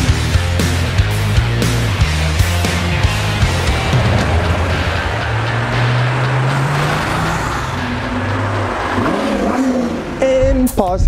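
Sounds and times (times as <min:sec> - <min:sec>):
police car engines accelerating: 0:00.0 - 0:10.6.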